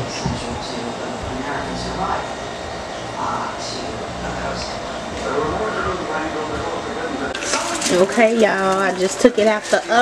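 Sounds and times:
low hum: 0.0 - 7.8
indistinct background voices: 0.0 - 10.0.

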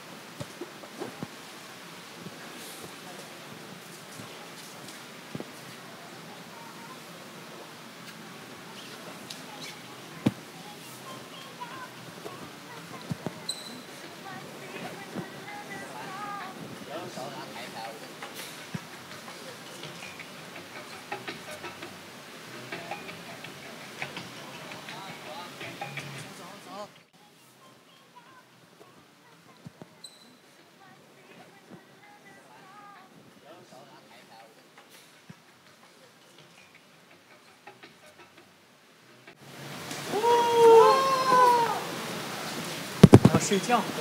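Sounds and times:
voices in high wordless call: 0.0 - 39.4
low room noise: 0.0 - 44.0
sneaker squeaks: 8.0 - 10.4, 12.2 - 14.0, 29.7 - 30.4.

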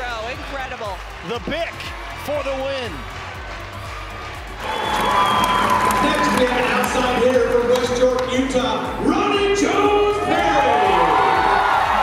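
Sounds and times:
arena crowd cheering: 0.0 - 12.0
background music: 0.0 - 12.0.

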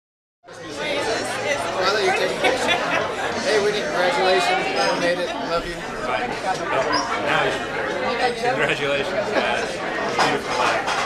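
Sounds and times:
crowd chatter in large room: 0.4 - 11.0.

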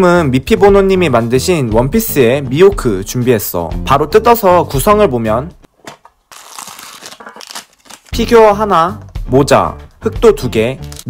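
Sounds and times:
plastic bag and bubble wrap crinkling: 6.2 - 8.2, 10.8 - 11.0.

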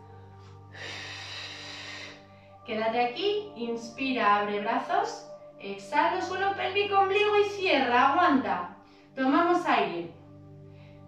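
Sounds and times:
person breathing: 0.0 - 2.6, 8.8 - 9.2, 10.6 - 11.0
soft background music: 0.0 - 11.0.

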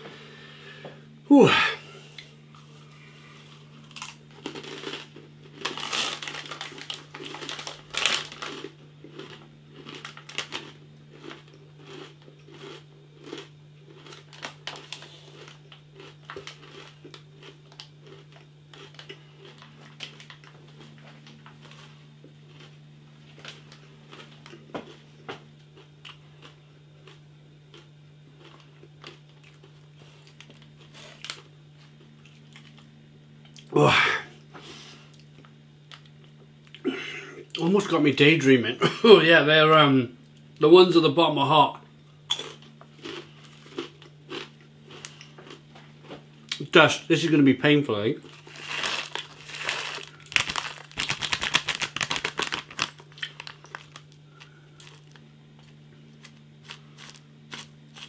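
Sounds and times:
crunching and chewing chips: 2.1 - 33.7, 34.6 - 37.9, 42.3 - 46.7, 48.2 - 58.0.

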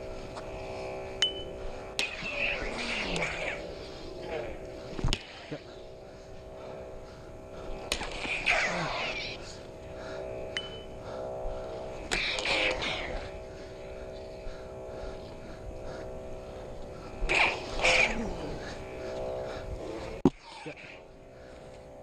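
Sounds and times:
lightsaber humming drone: 0.0 - 22.0
lightsaber swing or clash effects: 2.0 - 5.4, 7.9 - 9.4, 12.0 - 13.4, 17.3 - 18.6.

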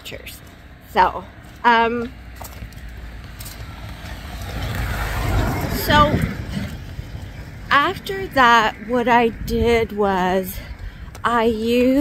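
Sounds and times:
road vehicle approaching: 0.0 - 12.0.

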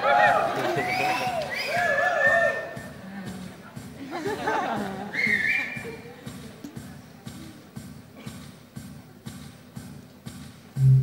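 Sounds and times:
person whistling shrilly: 0.8 - 2.4, 5.1 - 5.8
band playing low pulsing note: 10.8 - 11.0.

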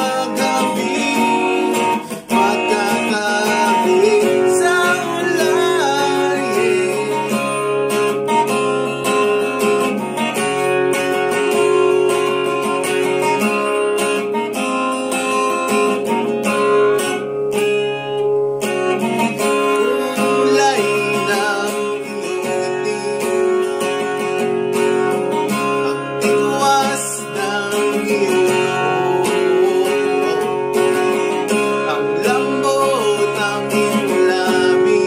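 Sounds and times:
person singing: 0.0 - 8.4, 19.0 - 35.0
acoustic guitar strumming chords: 0.0 - 35.0.

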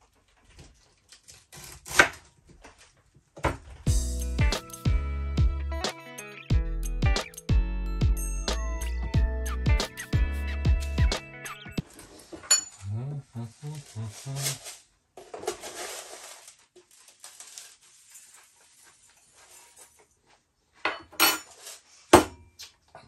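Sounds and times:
knife cutting cabbage: 1.1 - 2.4
cabbage rustling: 13.6 - 20.0.

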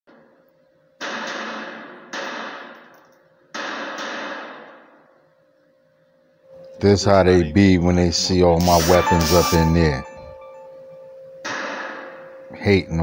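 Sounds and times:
gunshots echoing indoors: 1.0 - 5.2, 11.4 - 12.5.

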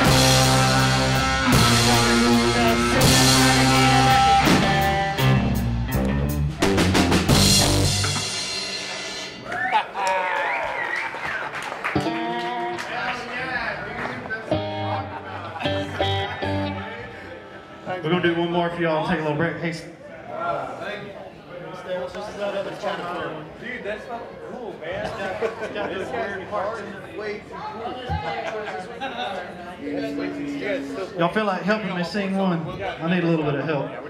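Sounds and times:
electric guitar chords ringing: 0.0 - 8.6, 12.0 - 12.9, 14.5 - 17.9, 29.7 - 32.3
live rock band playing: 0.0 - 9.5, 11.8 - 12.9, 14.4 - 17.9, 29.8 - 32.1.

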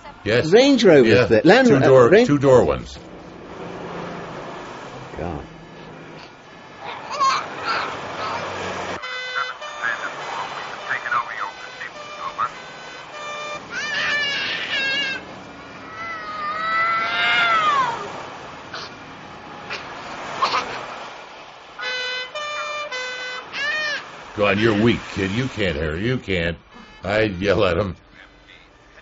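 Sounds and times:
siren pitch glides: 0.8 - 18.2
two-tone police siren: 1.5 - 18.2, 21.8 - 25.4.

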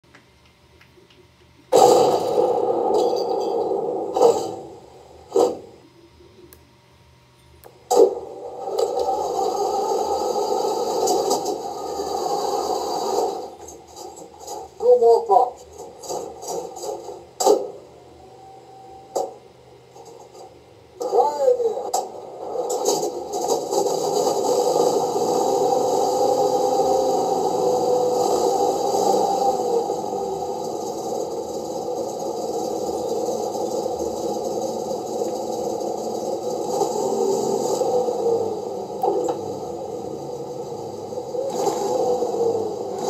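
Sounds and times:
noisy sound effects from speaker: 0.0 - 43.0
sharp cracks: 1.7 - 3.0
radio-style voice clips: 14.5 - 16.3, 21.0 - 22.9.

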